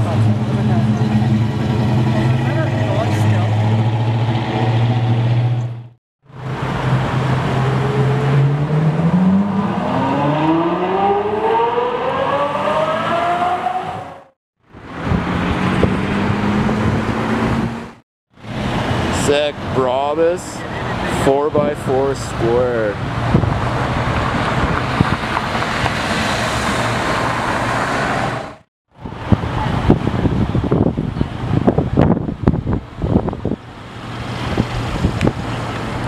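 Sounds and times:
car engine accelerating: 0:00.0 - 0:19.2.

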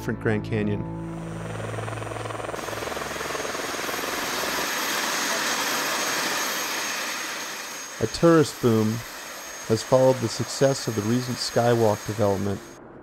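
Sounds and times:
background music: 0:00.0 - 0:02.2
helicopter rotor beat: 0:01.0 - 0:12.8.

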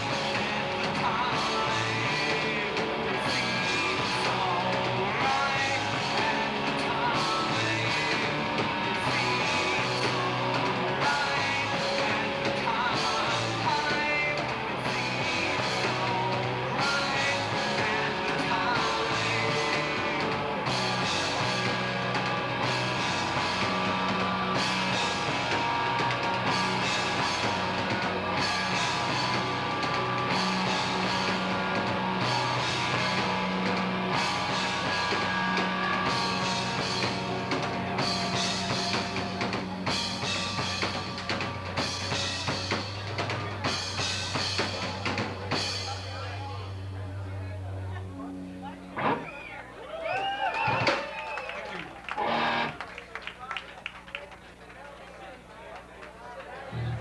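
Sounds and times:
person singing: 0:00.0 - 0:20.5
distorted electric guitar: 0:00.0 - 0:49.8, 0:52.1 - 0:52.8, 0:56.6 - 0:57.0
loud rock band playing: 0:00.0 - 0:51.1, 0:52.0 - 0:52.8
held low bass note: 0:56.8 - 0:57.0.

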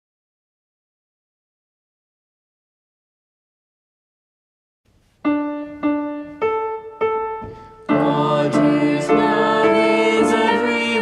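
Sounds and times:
piano notes ringing: 0:05.2 - 0:11.0.

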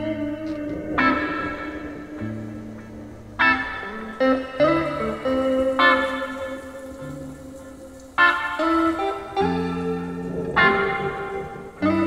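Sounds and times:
low note: 0:00.0 - 0:07.6.

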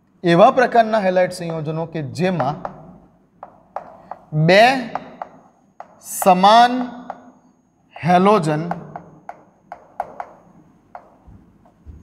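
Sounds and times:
chalk tapping on chalkboard: 0:01.4 - 0:01.7, 0:02.4 - 0:07.3, 0:08.7 - 0:11.8.

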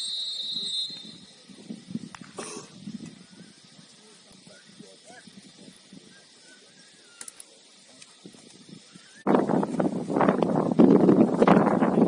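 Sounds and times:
referee's whistle blast: 0:00.0 - 0:01.3.

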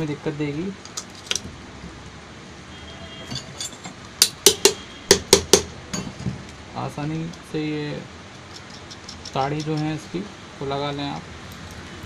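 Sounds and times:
metal motor parts clicking: 0:08.4 - 0:10.0.

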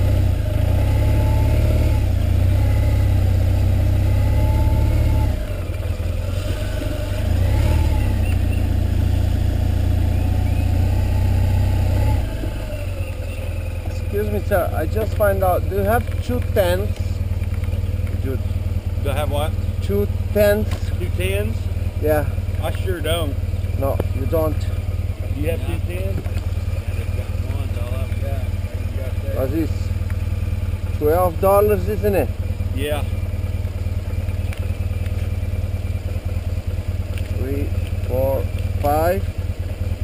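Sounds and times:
motorcycle engine idling: 0:00.0 - 0:40.0.

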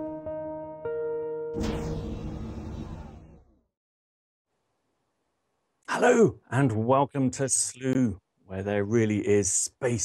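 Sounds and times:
whoosh and hit sound effect: 0:01.6 - 0:03.6
man speaking: 0:05.9 - 0:10.0.

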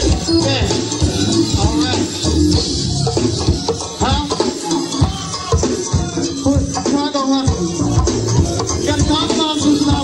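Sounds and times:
live band playing: 0:00.0 - 0:10.0
steady drum beat: 0:00.0 - 0:10.0.

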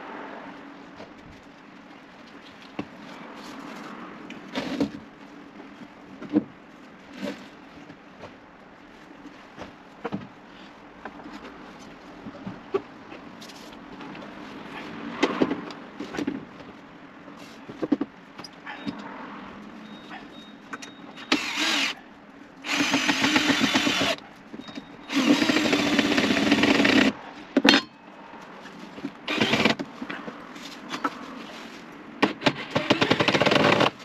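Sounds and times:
cordless drill driving screws: 0:21.3 - 0:22.0, 0:22.6 - 0:24.2, 0:25.1 - 0:27.2, 0:29.3 - 0:29.8.

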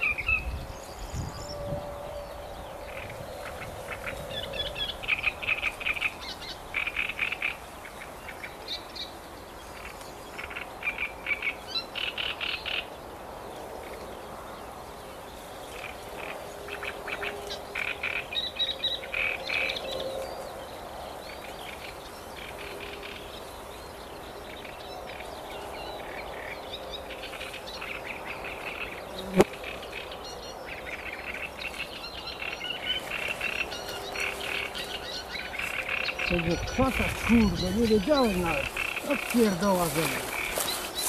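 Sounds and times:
outdoor background: 0:00.0 - 0:41.0
frogs calling in rattling bursts: 0:02.8 - 0:08.5, 0:09.8 - 0:12.9, 0:15.8 - 0:19.8, 0:29.6 - 0:40.7.

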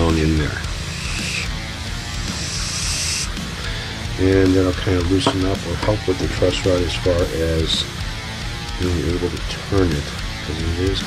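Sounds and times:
hiss of air through straw: 0:00.7 - 0:03.6.

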